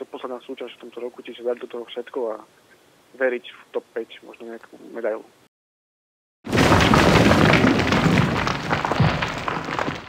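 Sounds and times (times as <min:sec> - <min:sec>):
crackling rumbling blast: 0:06.5 - 0:10.0.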